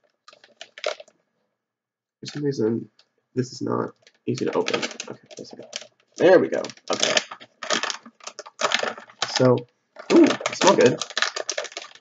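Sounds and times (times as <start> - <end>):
snack package crinkling: 0.3 - 1.1, 4.0 - 12.0.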